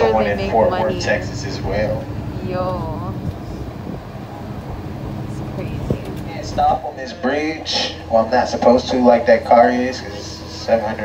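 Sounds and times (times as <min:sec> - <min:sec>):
vehicle engine and tyres rumble: 0:00.0 - 0:11.0.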